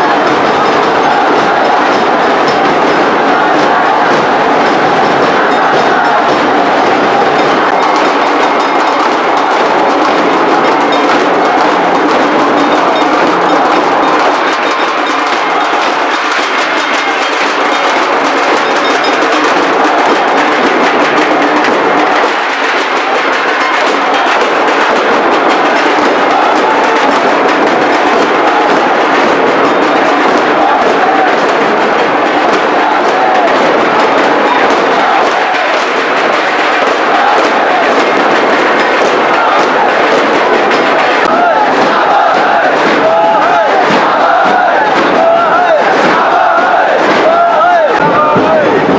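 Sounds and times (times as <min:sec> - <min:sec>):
loud drumming and percussion: 0:00.0 - 0:48.9.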